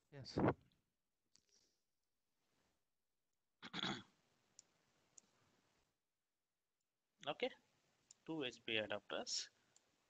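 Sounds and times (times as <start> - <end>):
man clearing his throat: 3.6 - 4.1.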